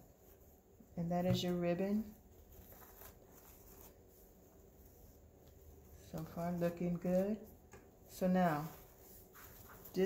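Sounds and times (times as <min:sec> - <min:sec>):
ribbon rustling: 0:00.0 - 0:10.0.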